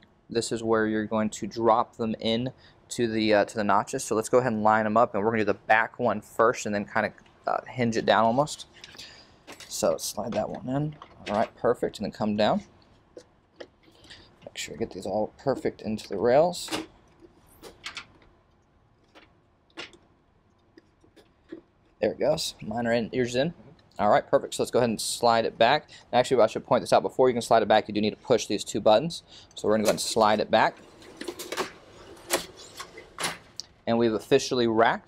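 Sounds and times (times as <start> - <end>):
server sliding on metal rails: 29.8 - 33.5.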